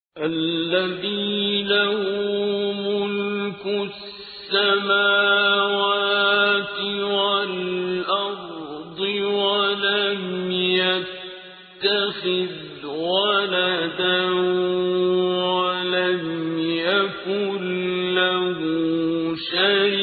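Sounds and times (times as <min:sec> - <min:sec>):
person chanting melodic recitation: 0:00.2 - 0:20.0.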